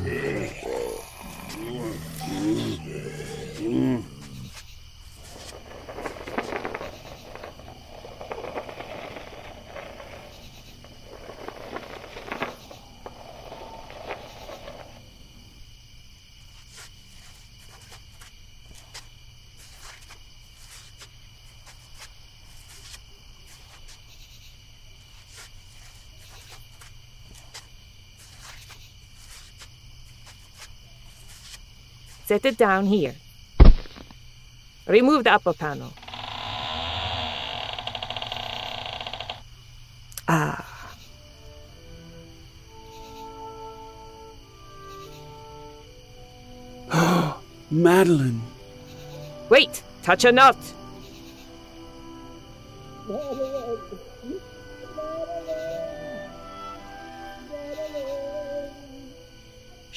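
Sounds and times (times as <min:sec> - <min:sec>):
zombie groans and grunts: 0:00.0 - 0:04.6, 0:40.2 - 0:41.0, 0:46.9 - 0:47.4
faint insect chirping: 0:00.0 - 0:59.9.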